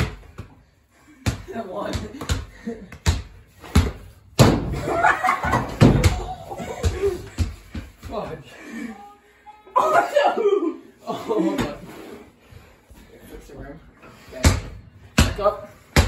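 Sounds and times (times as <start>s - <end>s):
basketball bouncing on hard floor: 1.2s - 4.8s, 5.5s - 8.2s
young men calling out and laughing: 1.4s - 2.9s, 8.0s - 11.9s.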